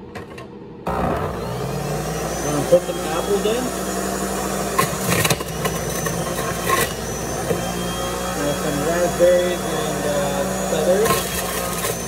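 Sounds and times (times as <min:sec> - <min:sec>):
juicer motor humming: 0:00.9 - 0:12.0.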